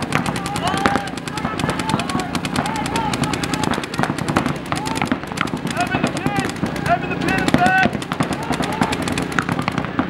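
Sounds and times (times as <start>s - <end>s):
paintball markers firing rapidly: 0.0s - 10.0s
players shouting: 0.0s - 10.0s.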